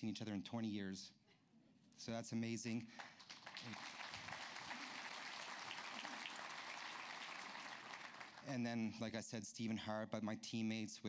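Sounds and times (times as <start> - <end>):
audience clapping: 2.9 - 8.8.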